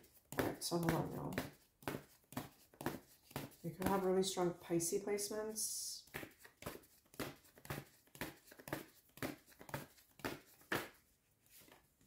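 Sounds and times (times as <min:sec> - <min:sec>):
cards being shuffled: 0:00.0 - 0:04.2, 0:06.1 - 0:12.0.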